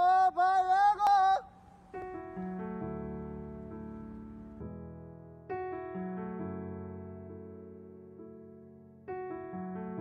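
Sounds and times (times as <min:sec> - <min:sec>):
high voice singing wordless notes: 0:00.0 - 0:01.6.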